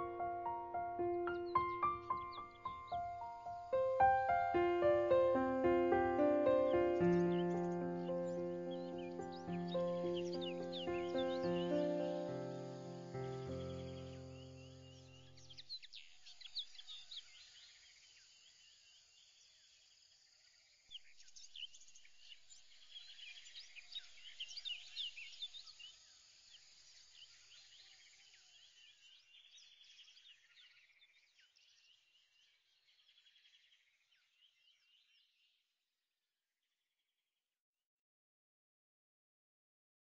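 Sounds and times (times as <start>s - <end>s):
background music: 0.0s - 15.0s
birds chirping: 0.0s - 17.4s.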